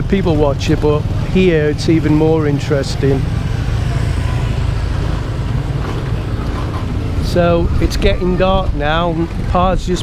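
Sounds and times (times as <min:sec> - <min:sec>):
motorcycles and scooters passing: 0:00.0 - 0:10.0.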